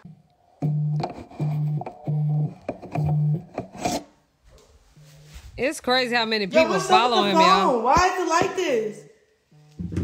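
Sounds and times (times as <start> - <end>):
phone handling noise: 0.6 - 3.8.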